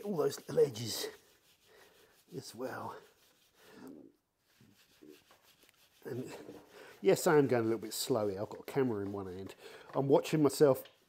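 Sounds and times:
brush rubbing wheel spokes: 0.0 - 9.6.

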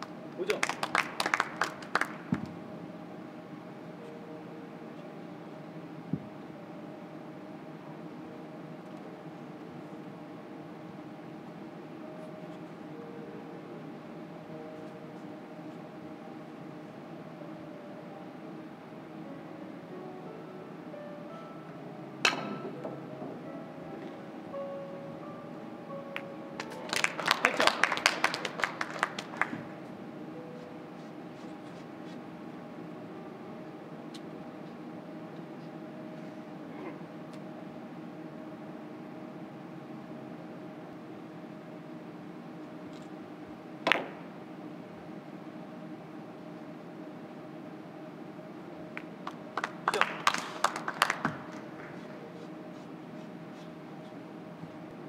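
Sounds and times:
audience applause: 0.0 - 2.3, 26.6 - 29.8, 49.2 - 51.8
steady low hum: 0.0 - 55.0.

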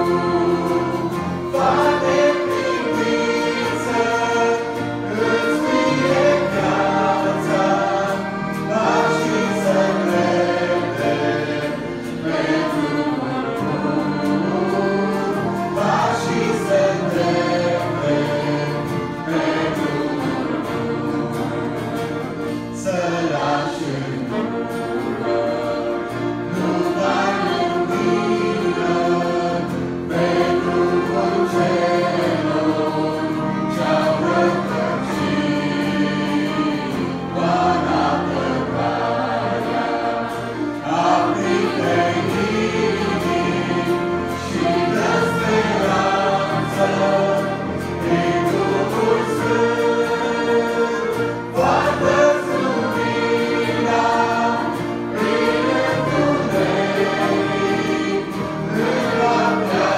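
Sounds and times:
acoustic guitar: 0.0 - 59.9
brass: 0.0 - 59.9
choir singing a gospel hymn: 0.0 - 59.9
keyboards: 0.0 - 59.9.

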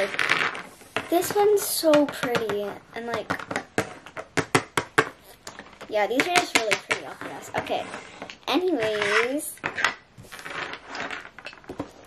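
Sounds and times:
plastic toys tapping on wood: 1.0 - 8.4.

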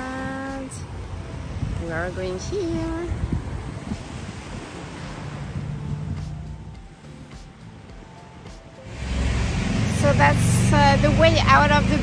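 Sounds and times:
wind on microphone: 0.0 - 6.8
faint music: 0.0 - 12.0
sea waves on shore: 0.0 - 12.0.

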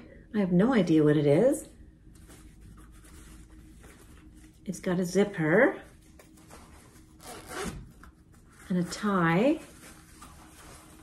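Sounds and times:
fabric bag rustling: 5.8 - 11.0.

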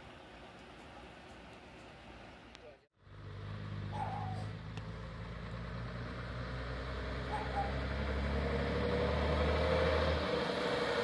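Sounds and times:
diesel engine humming: 0.0 - 11.0.

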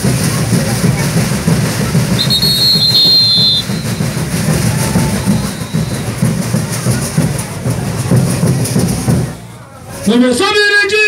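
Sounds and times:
drums marching rhythm: 0.0 - 10.8
shaken ankle rattles: 0.8 - 9.4
high whistle: 2.1 - 6.3.

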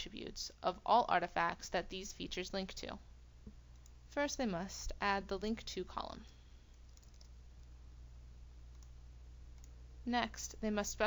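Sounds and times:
steady low hum: 0.0 - 11.0
keyboard and mouse clicks: 6.8 - 7.7, 8.7 - 9.0.

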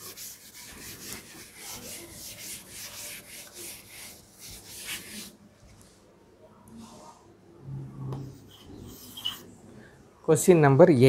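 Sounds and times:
duster wiping a blackboard: 0.0 - 5.4.

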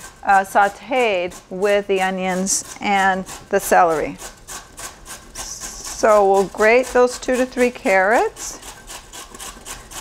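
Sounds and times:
carrot grated on metal grater: 0.0 - 10.0.

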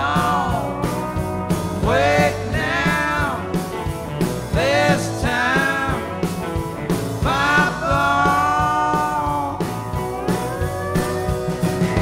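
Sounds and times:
bass: 0.0 - 12.0
lead melody with sliding notes: 0.0 - 12.0
steady drum beat: 0.0 - 12.0.

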